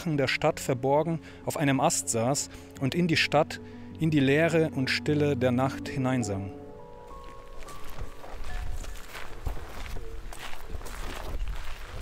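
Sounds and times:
footsteps of people walking: 6.9 - 12.0.

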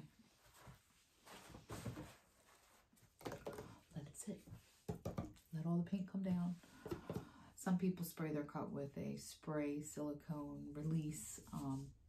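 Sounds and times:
faint rustling on a pad: 0.0 - 3.0, 10.7 - 12.0.

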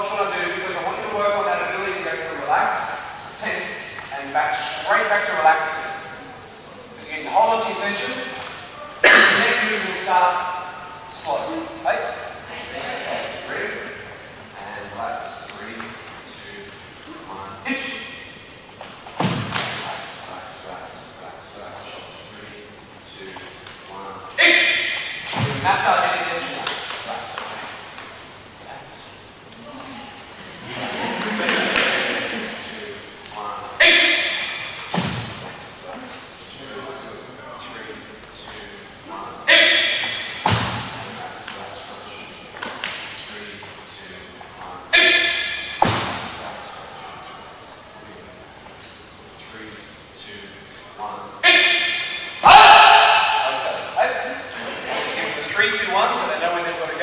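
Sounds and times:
voices: 0.0 - 57.0
heavy thuds echoing in a hall: 17.9 - 20.3, 24.4 - 28.2, 33.8 - 35.8, 39.5 - 41.9, 45.0 - 46.8
loud held shout: 24.4 - 25.1, 33.8 - 34.6, 39.5 - 40.3, 44.9 - 45.7, 51.4 - 53.8.

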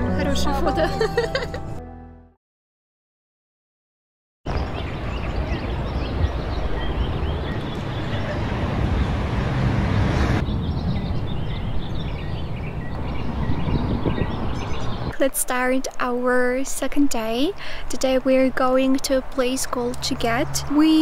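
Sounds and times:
small birds chirping: 4.5 - 9.2, 10.4 - 15.2
wind buffeting microphone: 4.5 - 15.1.

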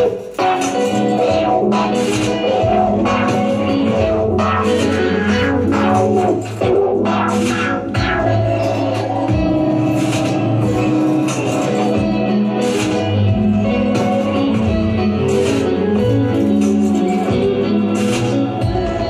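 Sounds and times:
electric guitar: 0.0 - 19.0
electronic sounds: 0.0 - 19.0.

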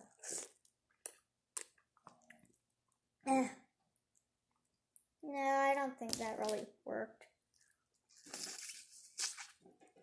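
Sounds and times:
juice slurping from plastic pouch: 8.1 - 9.6.

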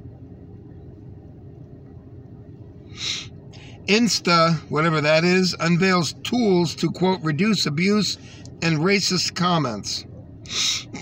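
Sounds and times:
faint constant hum: 0.0 - 11.0
vehicle cabin rumble: 0.0 - 11.0.

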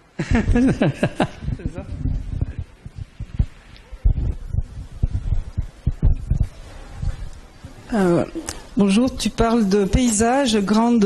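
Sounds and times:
microphone handling thumps: 0.4 - 7.9.

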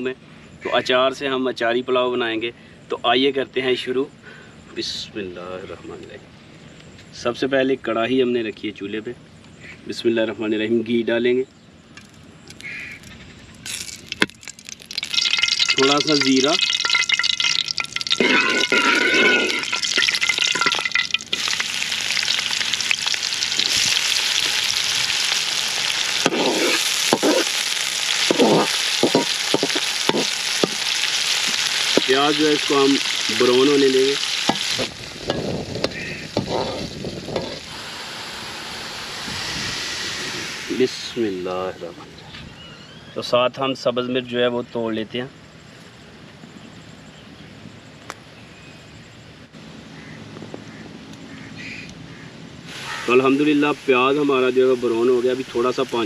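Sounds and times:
ghee sizzling in a pan: 13.7 - 41.7, 52.7 - 56.0
metal spoon scraping pan: 15.2 - 21.6.

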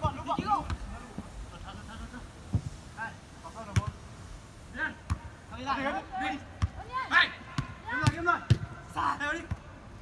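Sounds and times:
football being kicked: 7.6 - 8.7.

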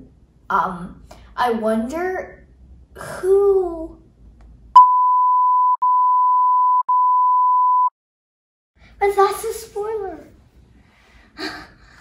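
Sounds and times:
censor bleep tone: 4.8 - 7.9.

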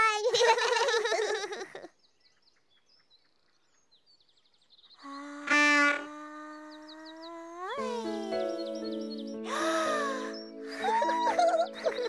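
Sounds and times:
faint birdsong chirping: 0.3 - 12.0.

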